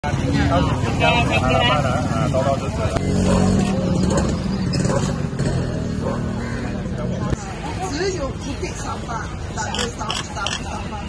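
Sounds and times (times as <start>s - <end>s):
people talking: 0.0s - 4.9s, 6.6s - 11.0s.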